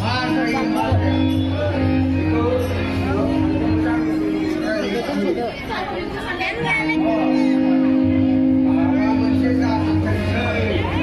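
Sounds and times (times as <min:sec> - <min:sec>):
sustained background music note: 0:00.0 - 0:05.4
actors speaking over microphones: 0:00.0 - 0:11.0.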